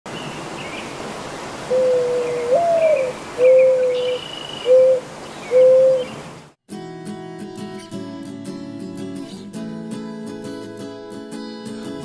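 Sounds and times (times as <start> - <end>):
small birds chirping: 0.1 - 1.0, 1.7 - 6.3
outdoor hiss: 0.1 - 6.6
bird's low clear call: 1.7 - 6.2.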